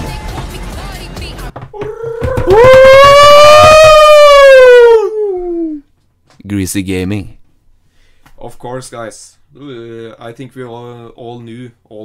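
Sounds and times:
loud wailing cry: 1.8s - 5.8s.

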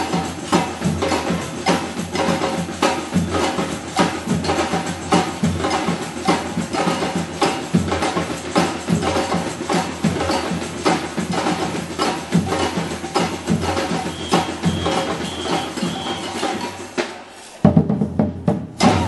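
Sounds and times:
street drumming band: 0.0s - 19.0s.

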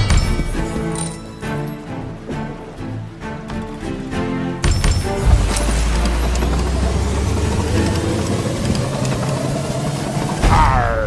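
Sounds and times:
deep rumbling drone: 5.1s - 11.0s.

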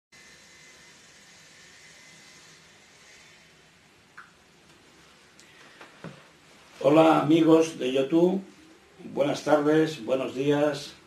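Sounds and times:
thin high whine: 0.2s - 4.3s
faint room noise hiss: 0.2s - 11.0s.

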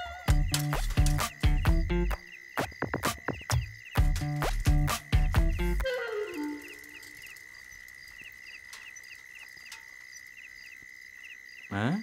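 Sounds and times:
crickets chirping: 0.0s - 12.0s
high insect drone: 0.0s - 12.0s
music cue: 4.2s - 7.2s.

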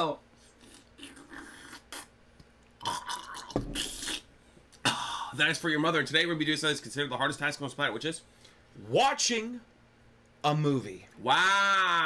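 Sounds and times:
man burping: 2.8s - 5.3s.

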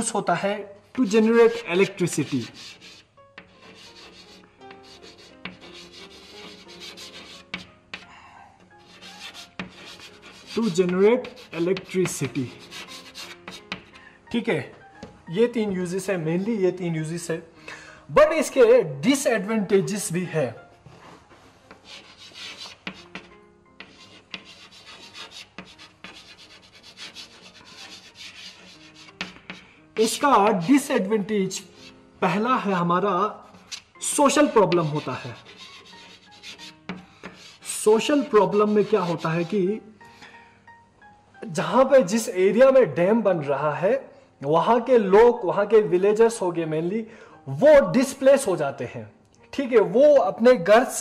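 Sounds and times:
chalk scratching on blackboard: 0.9s - 8.1s, 8.8s - 14.0s, 21.7s - 32.0s, 33.4s - 39.6s
chalk tapping on board: 0.9s - 8.1s, 8.8s - 14.0s, 21.7s - 30.9s, 31.7s - 32.0s, 33.5s - 39.6s.

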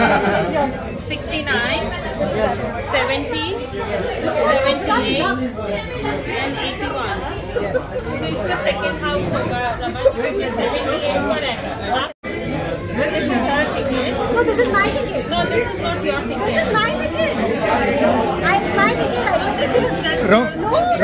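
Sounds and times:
overlapping chatter of voices: 0.0s - 21.0s.

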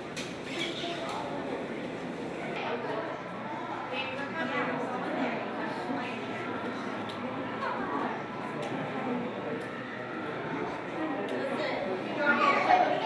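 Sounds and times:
people talking in echoing hall: 0.0s - 13.0s.

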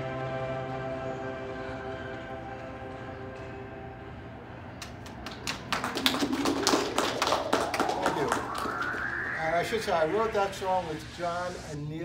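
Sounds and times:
small audience clapping: 4.8s - 9.1s
backing track closing notes: 7.3s - 11.1s.

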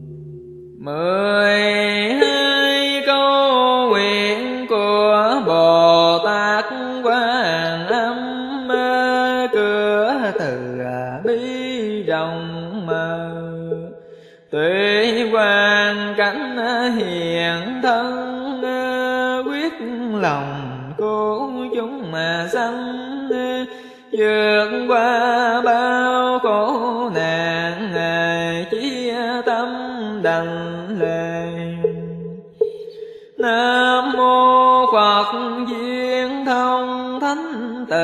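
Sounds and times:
devotional chanting: 0.0s - 38.0s.

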